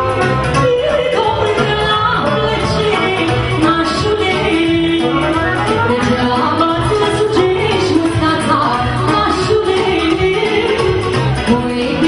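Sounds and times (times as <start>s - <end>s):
folk party band music: 0.0s - 12.0s.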